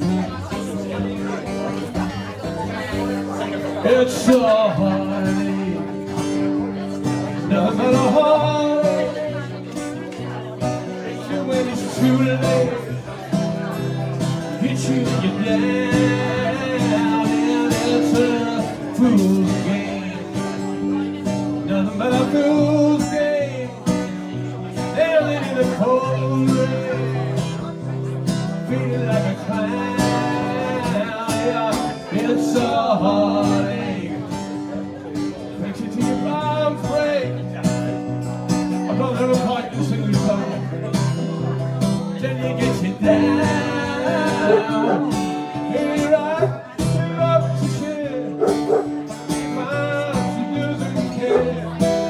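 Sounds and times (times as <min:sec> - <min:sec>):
acoustic guitars strummed: 0:00.0 - 0:52.0
man singing: 0:00.0 - 0:52.0.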